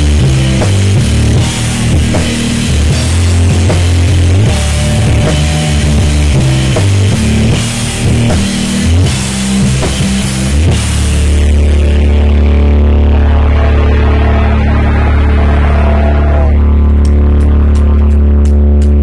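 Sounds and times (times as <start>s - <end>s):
rock band playing: 0.0s - 18.1s
low bass note droning: 0.0s - 19.0s.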